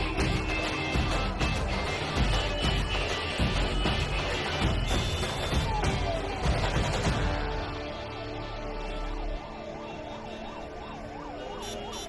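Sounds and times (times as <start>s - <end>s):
siren wailing: 1.9s - 12.0s.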